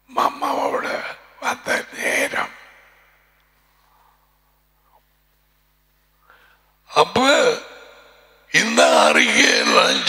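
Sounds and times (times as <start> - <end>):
man speaking into headset: 0.1 - 2.5, 6.9 - 7.7, 8.5 - 10.0.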